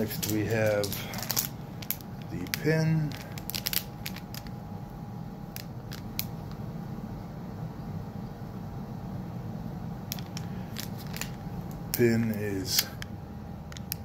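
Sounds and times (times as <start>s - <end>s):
plastic sleeve clicks and crinkles: 0.0s - 4.5s, 5.6s - 6.6s, 10.1s - 13.1s
steady background hum: 0.0s - 14.0s.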